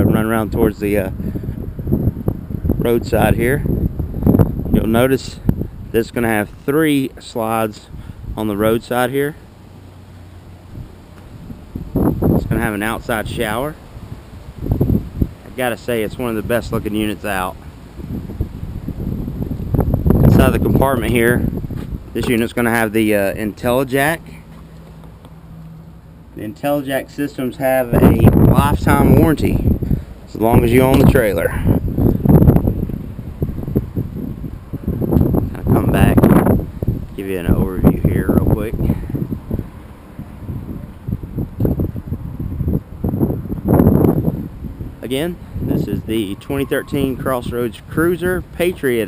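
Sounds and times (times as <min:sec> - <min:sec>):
wind buffeting microphone: 0:00.0 - 0:49.0.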